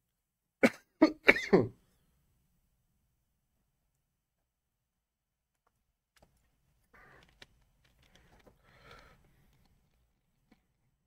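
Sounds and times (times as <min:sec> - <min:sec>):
man coughing: 0:00.6 - 0:01.8.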